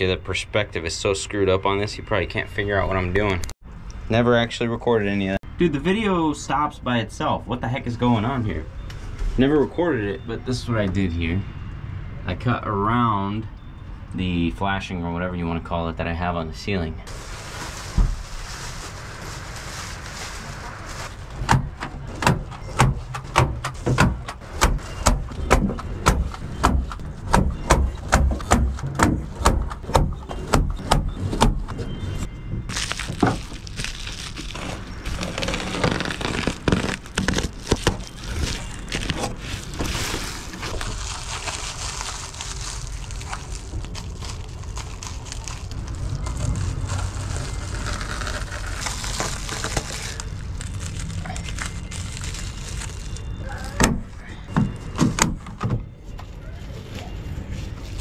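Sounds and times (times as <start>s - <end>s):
foil crinkling and rustling: 17.1s - 21.8s, 32.7s - 54.3s, 56.3s - 58.0s.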